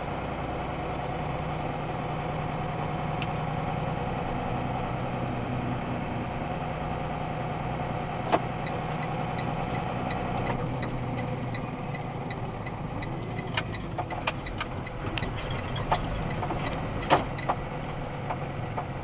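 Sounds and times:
truck engine and road noise: 0.0s - 19.0s
turn signal ticking: 8.1s - 19.0s.

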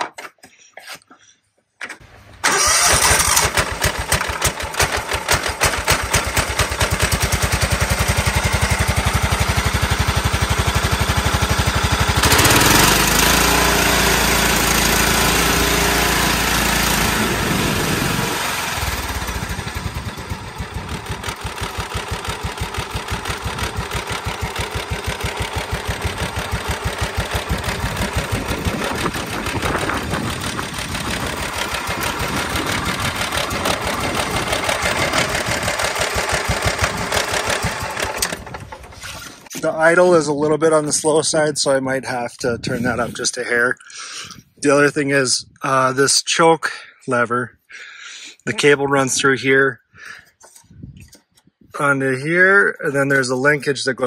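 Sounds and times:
electric starter cranking: 2.4s - 39.4s
riding mower engine running: 2.4s - 39.4s.

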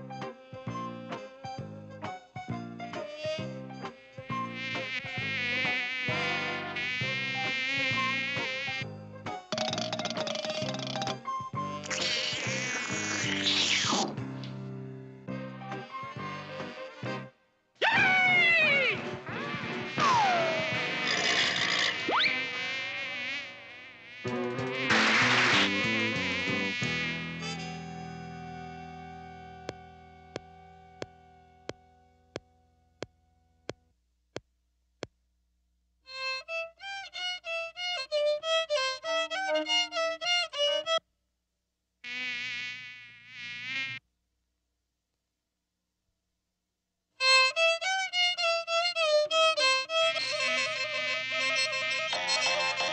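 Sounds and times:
cartoon fly buzzing: 0.2s - 14.3s, 15.7s - 17.2s, 18.0s - 31.2s, 42.0s - 44.0s, 49.5s - 52.9s.

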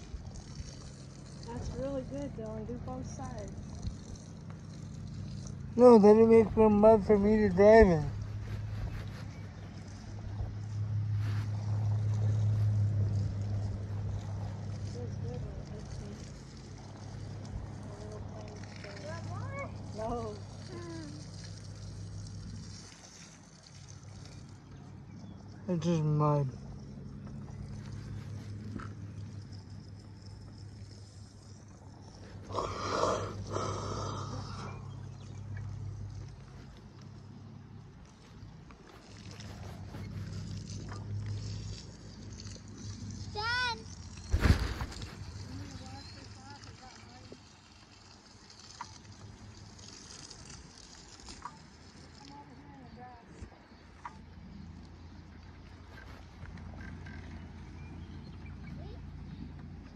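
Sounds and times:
low hum: 0.0s - 25.7s
rustling handling noise: 44.2s - 46.0s.

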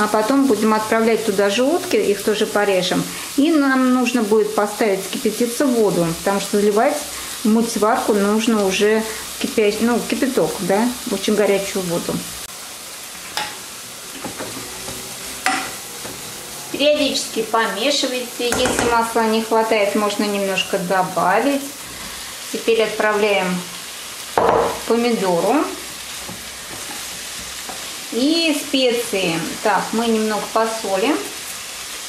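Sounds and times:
vegetables sizzling in oil: 0.0s - 32.0s
utensil knocking against pot: 18.5s - 19.0s
utensil stirring: 25.8s - 28.0s.

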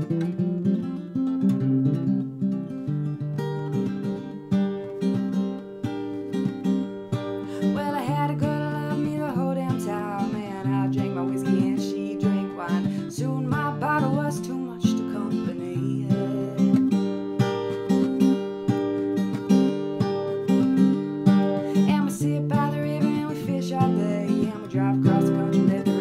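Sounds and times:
acoustic guitar strumming: 0.0s - 26.0s
woman singing: 7.4s - 17.6s, 19.6s - 26.0s.

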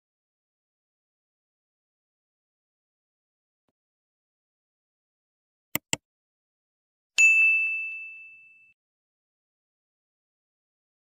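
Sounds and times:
bell-like ding: 7.2s - 8.8s.

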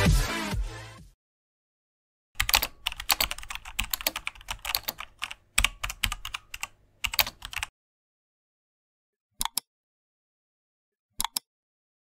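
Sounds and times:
keyboard key clicks: 11.2s - 11.4s.

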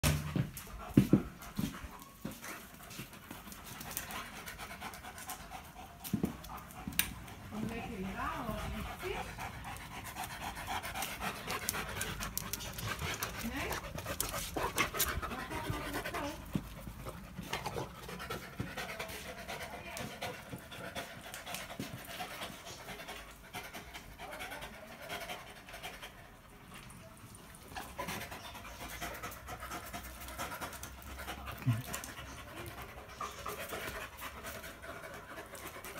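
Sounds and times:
dogs panting: 0.0s - 35.9s.

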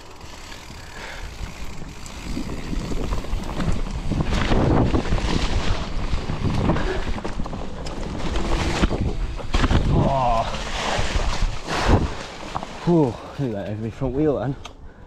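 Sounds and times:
bike tyres rumbling on dirt: 0.0s - 14.4s
wind rushing over microphone: 0.7s - 12.3s
bike knocks and rattles: 1.4s - 12.8s.

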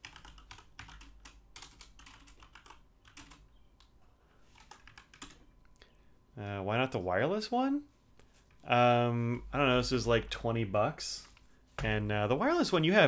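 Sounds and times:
computer keyboard typing: 0.0s - 3.9s, 4.6s - 5.5s.

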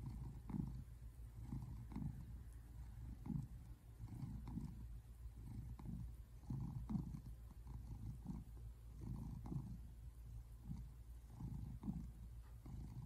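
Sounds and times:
cat purring: 0.0s - 13.0s.

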